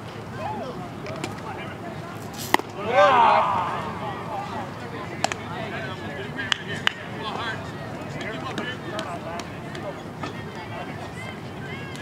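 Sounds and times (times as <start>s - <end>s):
bat hitting baseball: 2.4s - 2.9s
spectators shouting: 2.7s - 4.8s.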